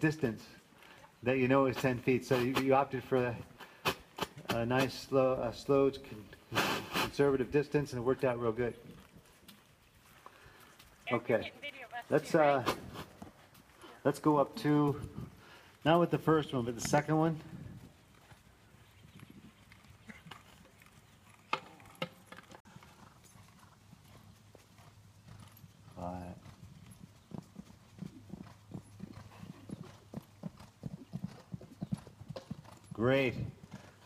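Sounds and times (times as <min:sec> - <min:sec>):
horse hoofbeats on sand: 0:14.9 - 0:34.0.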